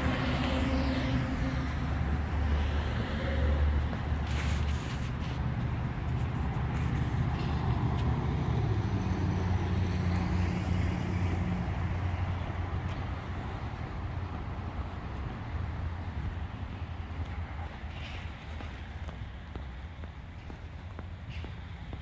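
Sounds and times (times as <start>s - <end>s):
vehicle engine drone: 0.0s - 22.0s.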